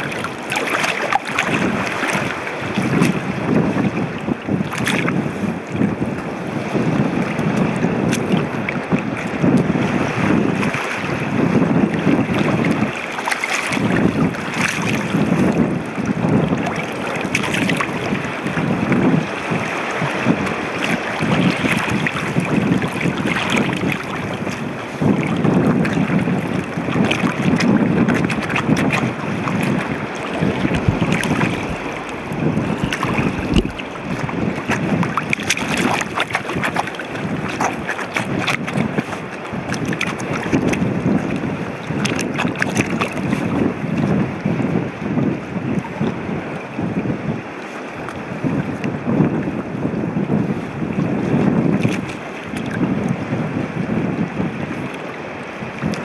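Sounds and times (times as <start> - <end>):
seawater sloshing around feet: 0.0 - 4.0, 12.0 - 43.6
wind rumbling on microphone: 0.0 - 56.0.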